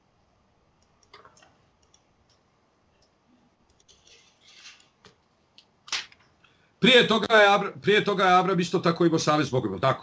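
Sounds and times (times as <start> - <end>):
man speaking: 6.8 - 10.0.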